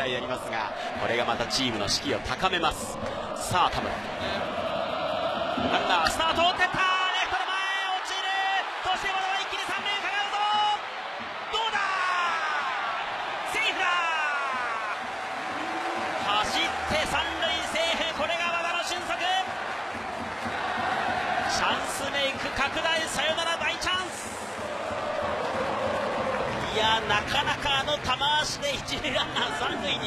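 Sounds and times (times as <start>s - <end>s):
crowd cheering and shouting: 0.0s - 30.0s.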